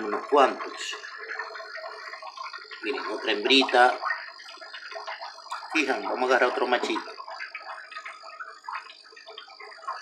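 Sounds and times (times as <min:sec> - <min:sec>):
water splashing and dripping: 0:00.0 - 0:10.0.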